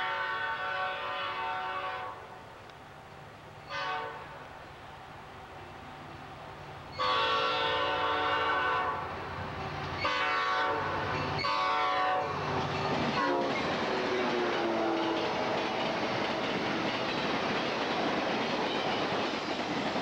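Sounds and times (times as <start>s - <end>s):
train horn blasts: 0.0s - 2.4s, 3.7s - 4.5s, 7.0s - 9.2s, 10.0s - 12.4s, 13.2s - 16.9s
rush of passing train cars: 0.0s - 20.0s
wheels clacking over rail joints: 12.3s - 20.0s.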